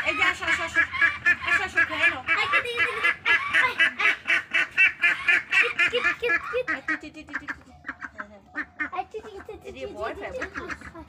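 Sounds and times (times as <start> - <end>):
ducks quacking: 0.0 - 11.0.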